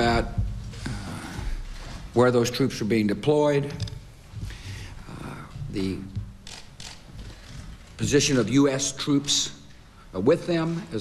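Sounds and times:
camera shutter clicks: 6.4s - 7.1s.

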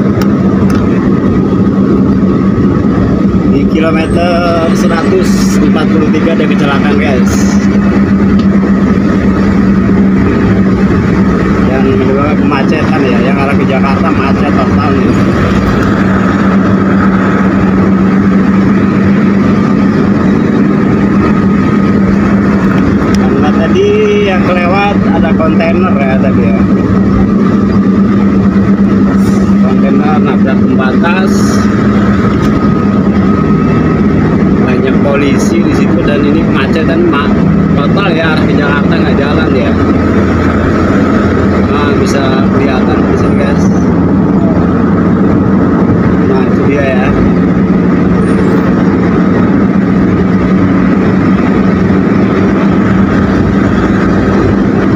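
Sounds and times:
car cabin road drone: 0.0s - 54.9s.

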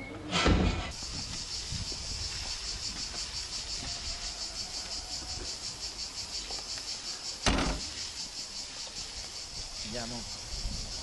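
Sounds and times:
insects buzzing in pulses: 0.9s - 11.0s.

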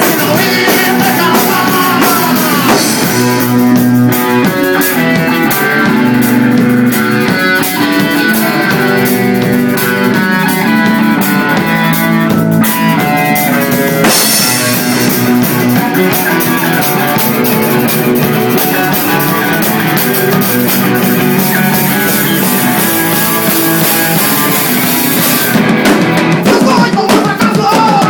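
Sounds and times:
drum kit with cymbals: 0.0s - 28.0s
electric bass and guitar riff: 0.0s - 28.0s.

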